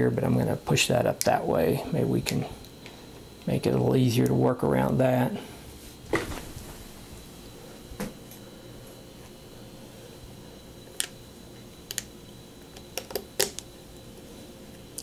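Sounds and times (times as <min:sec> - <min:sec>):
faint hum: 0:00.0 - 0:15.0.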